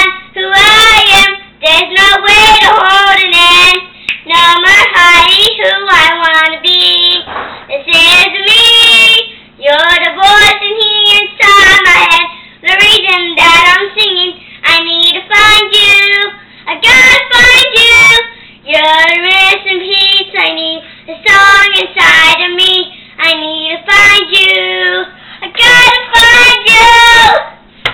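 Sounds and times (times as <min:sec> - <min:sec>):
girl singing unaccompanied: 0:00.0 - 0:27.6.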